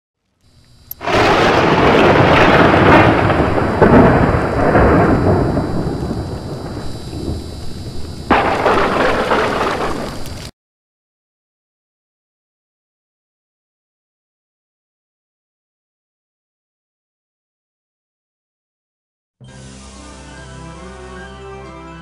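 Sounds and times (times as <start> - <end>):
rain-like hiss: 0.5 - 10.5
thunder claps rolling: 1.0 - 10.4.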